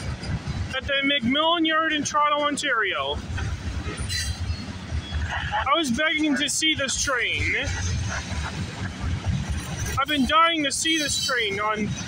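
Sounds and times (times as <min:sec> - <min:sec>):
train wheels rumbling on rails: 0:00.0 - 0:12.0.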